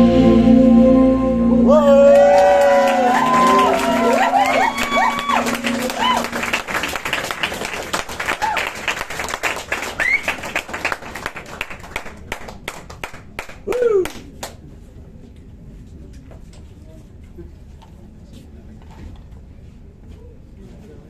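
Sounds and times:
audience whooping: 1.6s - 9.0s, 9.8s - 10.7s
audience applauding: 2.0s - 14.6s.

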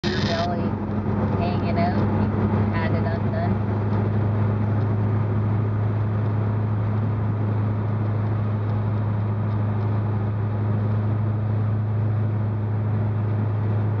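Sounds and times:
low engine drone: 0.0s - 14.0s.

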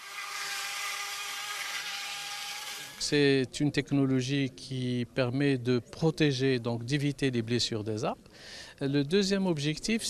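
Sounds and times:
power saw motor whine: 0.0s - 3.1s
saw cutting bark hiss: 0.0s - 3.1s.

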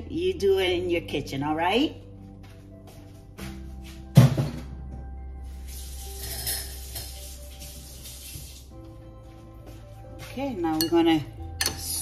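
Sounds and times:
background music: 0.0s - 12.0s
running water hiss: 5.6s - 8.7s.

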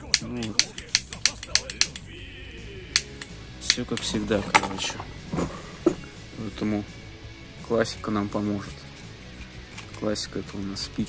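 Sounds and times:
lighter clicking: 0.0s - 2.1s, 2.9s - 4.1s.

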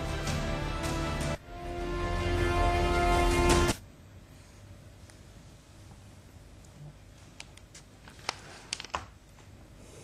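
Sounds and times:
low hiss: 0.0s - 10.0s.

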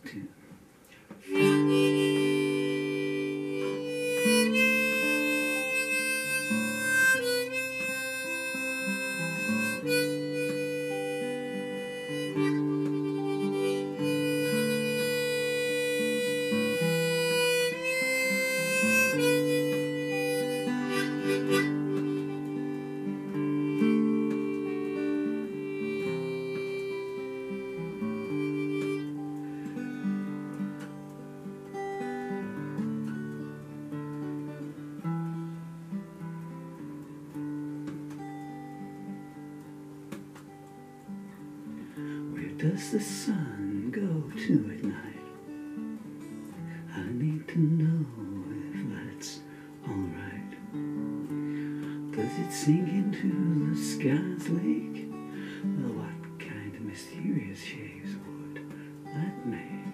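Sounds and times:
acoustic guitar chords: 0.0s - 59.9s
harmonica melody: 1.2s - 59.9s.

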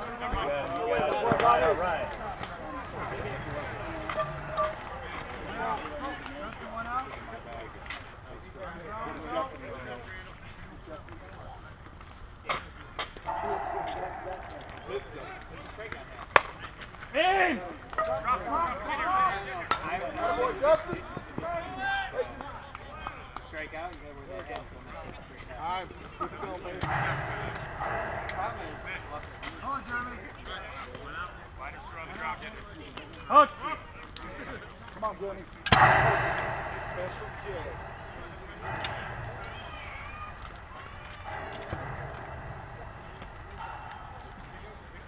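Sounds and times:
distant voices chattering: 0.0s - 45.0s
people shouting: 13.3s - 15.4s.

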